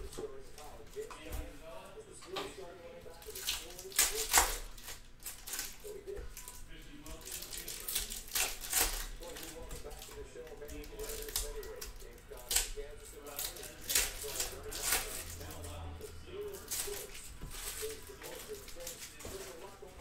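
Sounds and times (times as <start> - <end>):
foil packs crinkling and tearing: 3.2 - 20.0
cards being shuffled: 7.2 - 15.7, 16.4 - 20.0.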